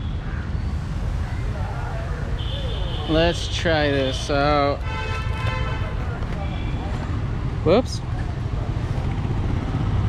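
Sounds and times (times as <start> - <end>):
road traffic rumble: 0.0 - 10.0
faint voices: 1.1 - 4.8.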